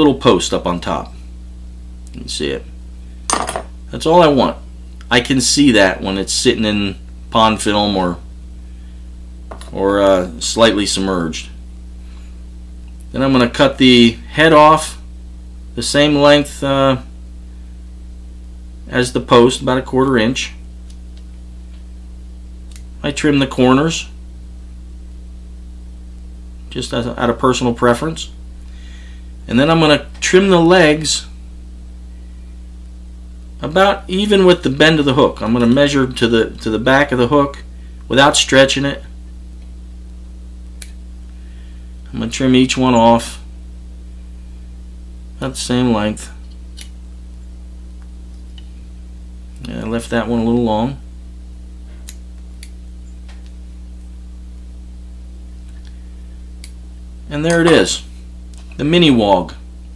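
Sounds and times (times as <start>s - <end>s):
steady electrical hum: 0.0s - 59.9s.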